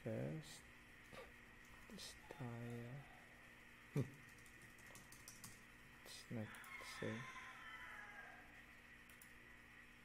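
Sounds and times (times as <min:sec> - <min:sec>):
soft keyboard typing: 0:04.0 - 0:05.7, 0:09.0 - 0:09.4.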